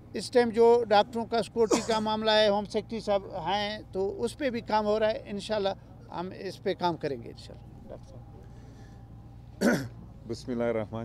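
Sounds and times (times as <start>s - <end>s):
low background rumble: 0.0s - 11.0s
man clearing throat: 1.6s - 2.0s, 9.6s - 10.0s.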